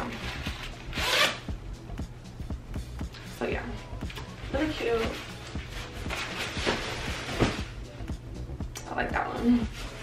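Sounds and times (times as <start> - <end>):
jacket zipper pulled open: 0.3 - 1.4.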